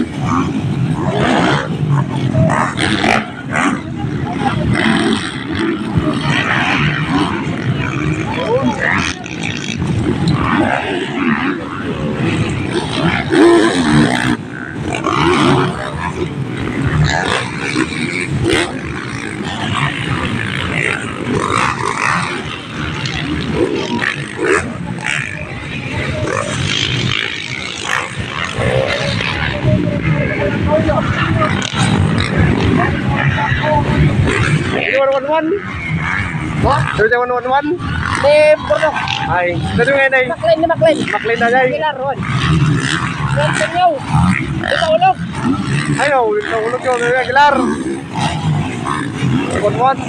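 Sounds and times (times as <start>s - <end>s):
dirt bike engines revving: 0.0s - 50.0s
spectators' voices: 0.0s - 50.0s.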